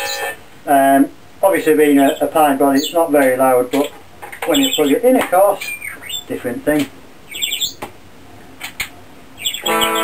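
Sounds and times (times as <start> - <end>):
high chirping: 0.0 - 0.4, 1.8 - 6.4, 7.3 - 7.8, 9.4 - 10.0.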